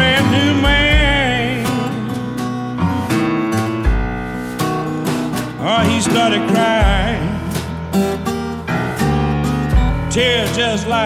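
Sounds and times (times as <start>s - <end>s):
person singing: 0.0s - 2.3s, 5.4s - 7.9s, 9.8s - 11.0s
electric blues band: 0.0s - 11.0s
electric guitar: 0.0s - 11.0s.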